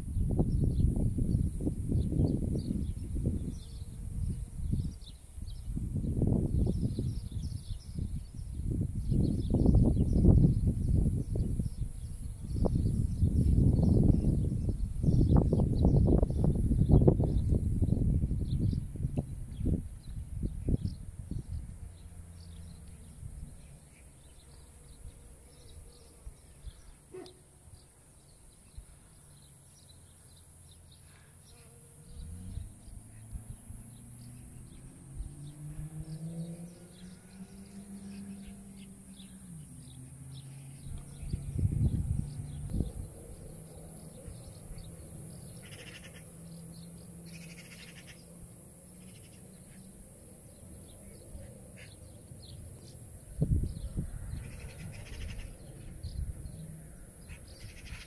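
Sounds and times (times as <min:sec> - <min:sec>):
low droning hum: 0:37.1 - 0:58.0.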